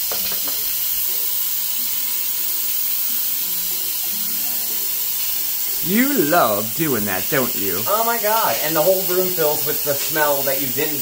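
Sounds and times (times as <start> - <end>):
pressure cooker steam hissing: 0.0 - 11.0.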